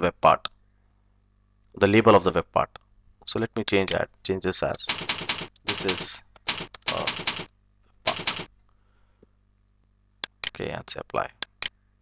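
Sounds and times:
computer keyboard typing: 4.8s - 7.5s, 8.1s - 8.5s.

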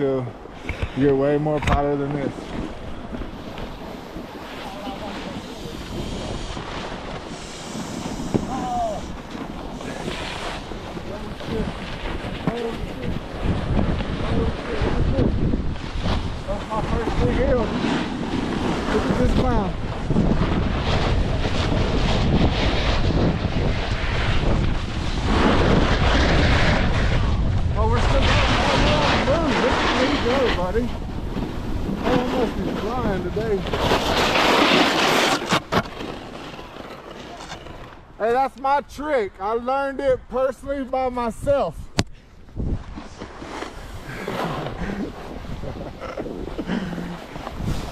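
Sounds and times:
wind rushing over microphone: 0.0s - 36.1s, 38.8s - 47.9s
snowboard scraping over snow: 0.0s - 39.2s, 42.5s - 47.9s.

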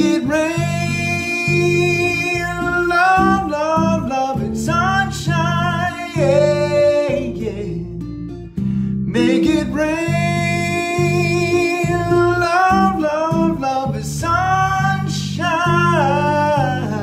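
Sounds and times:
man singing with vibrato: 0.0s - 8.0s, 9.1s - 17.0s.

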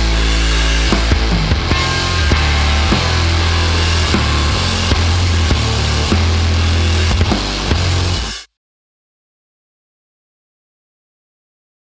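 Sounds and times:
distorted noise rock band playing: 0.0s - 8.5s
drum hits: 0.9s - 8.4s.

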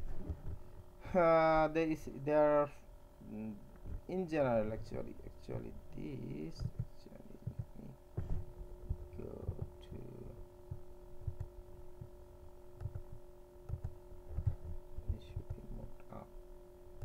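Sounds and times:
soft low thumps: 0.0s - 0.9s, 6.4s - 16.0s
electrical hum: 0.0s - 17.0s
faint steady tones: 0.0s - 17.0s.

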